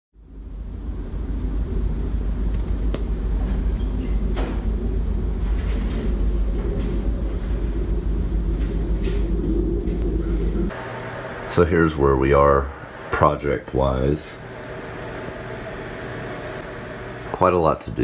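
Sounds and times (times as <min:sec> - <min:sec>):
wind buffeting microphone: 0:00.7 - 0:10.7.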